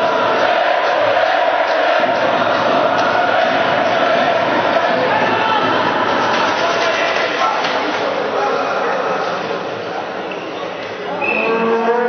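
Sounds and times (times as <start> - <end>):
crowd noise in a hall: 0.0 - 12.0.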